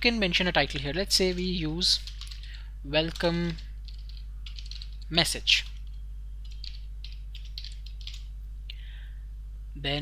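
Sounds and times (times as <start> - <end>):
steady low hum: 0.0 - 10.0
computer keyboard keys clicking: 0.6 - 8.3.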